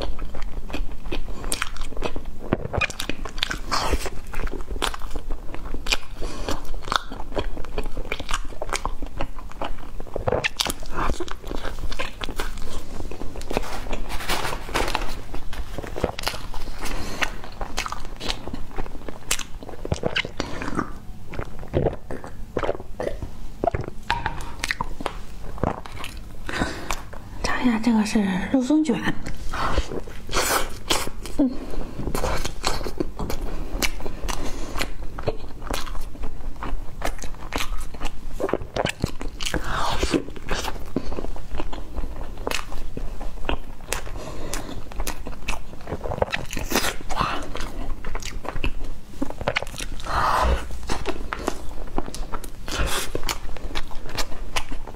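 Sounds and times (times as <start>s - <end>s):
chewing food: 0.0s - 27.3s, 29.2s - 54.9s
rustling crunch: 12.3s - 20.4s.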